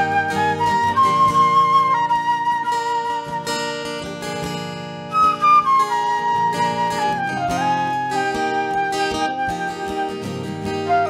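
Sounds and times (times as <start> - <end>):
flute melody: 0.0 - 11.0
strummed acoustic guitar: 0.0 - 11.0.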